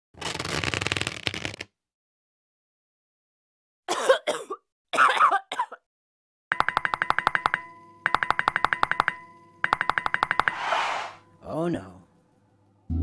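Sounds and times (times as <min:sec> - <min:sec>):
person coughing: 0:03.9 - 0:05.8
rapid clicking sound effect: 0:06.5 - 0:10.6.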